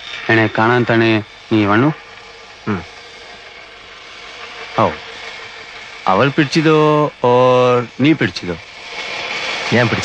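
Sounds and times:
background hiss: 0:00.0 - 0:10.0
faint hum: 0:00.0 - 0:10.0.

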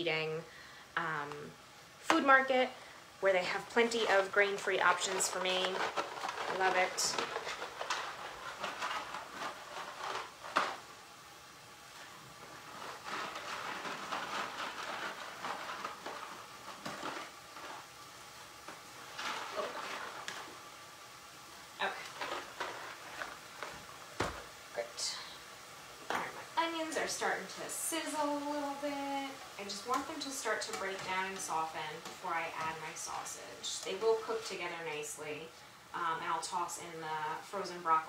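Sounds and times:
bag rustling: 0:03.9 - 0:11.0, 0:11.9 - 0:20.7.

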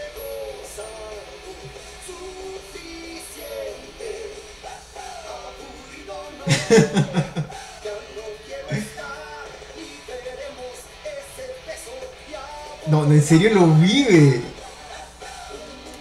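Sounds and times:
man singing rock song: 0:05.4 - 0:14.7
man laughing loudly: 0:06.4 - 0:07.7, 0:08.7 - 0:09.1.

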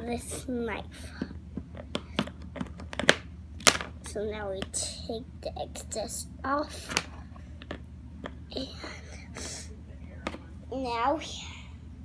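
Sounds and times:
plastic tools clicking and tapping: 0:01.6 - 0:03.9.

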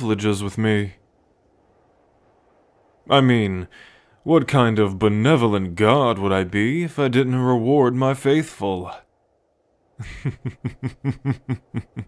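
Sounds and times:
man laughing deeply: 0:10.0 - 0:12.0.

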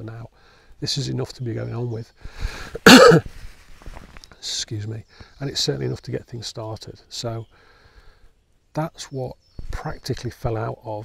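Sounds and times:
man coughing: 0:02.8 - 0:03.2.

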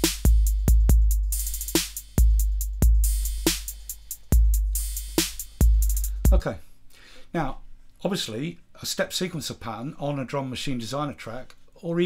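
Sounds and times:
deep drum machine kicks: 0:00.0 - 0:06.4
quick hi-hat ticks: 0:00.0 - 0:06.4
snare or clap hits: 0:05.2 - 0:05.6.

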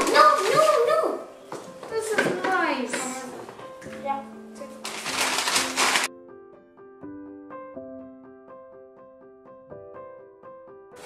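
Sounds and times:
children talking and laughing: 0:00.0 - 0:04.3
piano music: 0:00.0 - 0:11.0.

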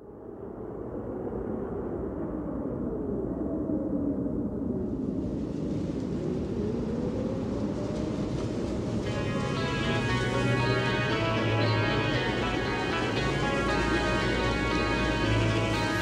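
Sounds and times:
low rumbling drone: 0:09.0 - 0:16.0
wavering tones: 0:09.1 - 0:16.0.

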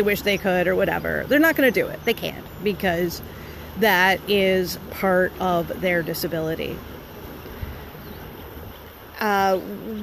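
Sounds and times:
wind on microphone: 0:04.3 - 0:10.0.

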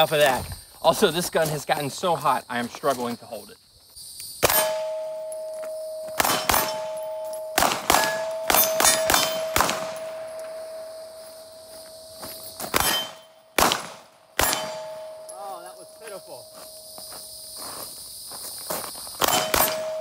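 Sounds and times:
pistol shots: 0:04.4 - 0:10.8, 0:12.7 - 0:15.4, 0:19.2 - 0:20.0
steel plates ringing: 0:04.4 - 0:13.5, 0:14.4 - 0:17.1, 0:19.2 - 0:20.0.

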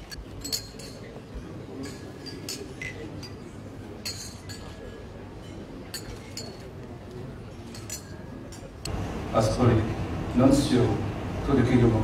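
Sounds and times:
drinking glasses clinking: 0:00.3 - 0:01.2, 0:01.8 - 0:06.8, 0:07.7 - 0:08.7.

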